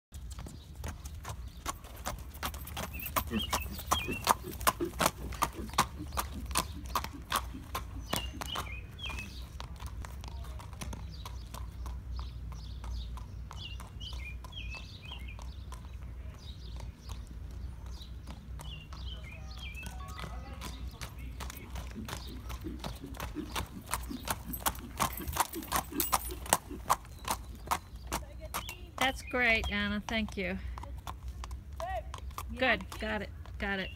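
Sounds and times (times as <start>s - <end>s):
horse hooves clip-clopping on asphalt: 0.1s - 33.9s.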